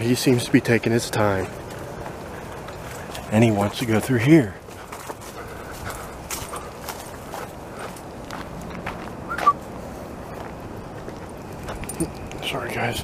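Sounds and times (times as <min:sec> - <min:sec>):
footsteps on leafy dirt path: 0:00.0 - 0:12.9.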